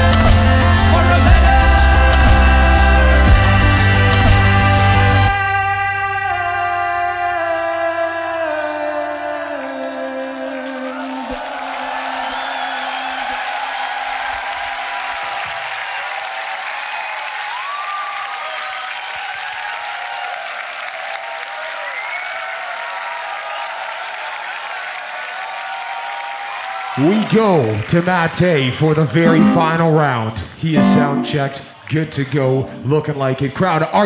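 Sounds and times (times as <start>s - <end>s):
audience cheering and applauding: 10.2s - 30.0s.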